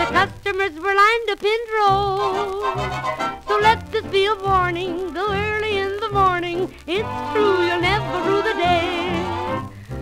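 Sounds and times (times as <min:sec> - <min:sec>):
old hawaiian song recording: 0:00.0 - 0:10.0.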